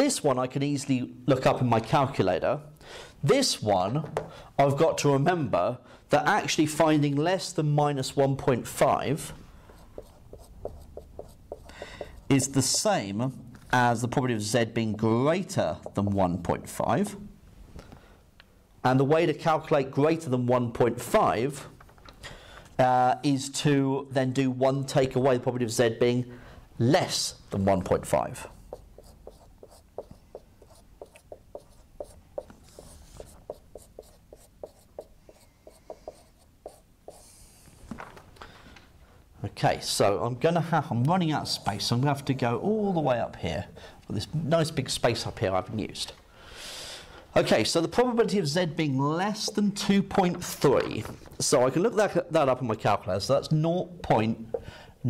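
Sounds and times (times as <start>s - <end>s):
marker writing on whiteboard: 8.8s - 13.8s, 14.4s - 16.4s, 28.1s - 37.6s, 49.4s - 50.6s.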